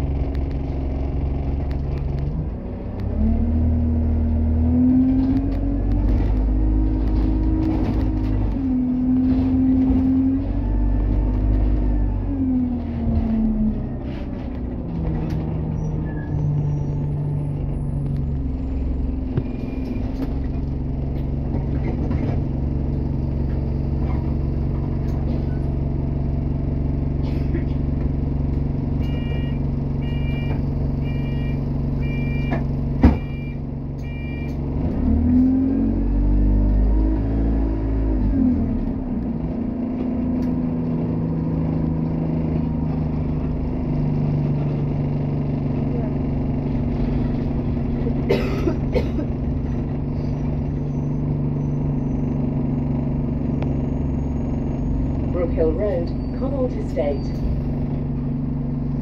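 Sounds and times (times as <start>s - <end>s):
bus engine idling and revving: 0.0s - 59.0s
bus doors shutting thud: 32.4s - 33.4s.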